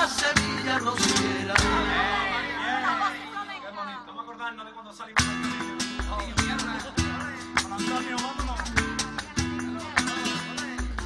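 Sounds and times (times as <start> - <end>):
flamenco guitar music: 0.0 - 11.0.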